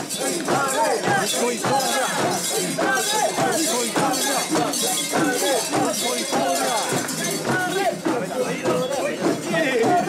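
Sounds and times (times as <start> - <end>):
crowd shouting and chanting: 0.0 - 10.0.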